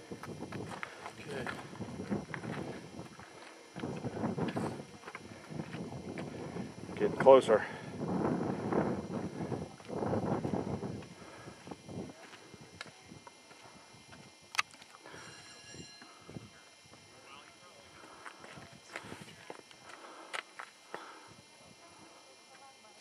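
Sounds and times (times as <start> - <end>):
footsteps on gravel: 0.2 - 6.3, 11.6 - 15.0, 17.4 - 21.1.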